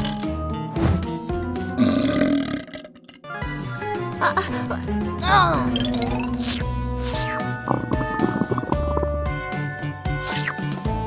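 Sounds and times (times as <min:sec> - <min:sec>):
cartoon background music: 0:00.0 - 0:11.0
baby burp sound effect: 0:01.8 - 0:03.3.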